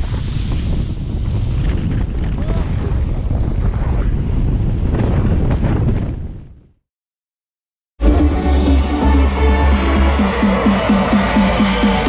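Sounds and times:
wind rumbling on microphone: 0.0 - 6.8.

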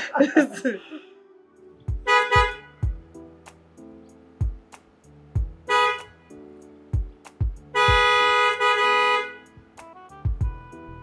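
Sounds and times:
background music: 0.0 - 11.0
car horn honking: 2.0 - 2.9, 5.6 - 6.2, 7.7 - 9.6.

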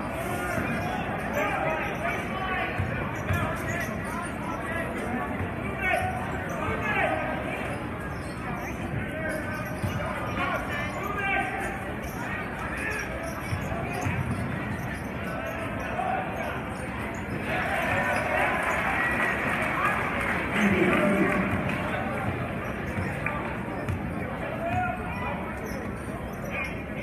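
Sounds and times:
crowd chatter and shouts: 0.0 - 27.0.

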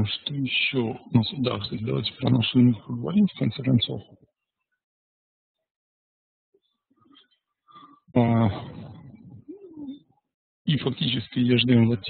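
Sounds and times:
man humming: 8.2 - 9.9.

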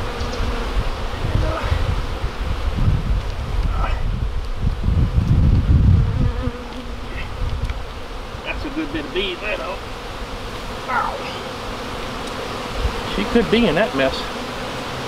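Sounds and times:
bees buzzing: 0.0 - 15.0.

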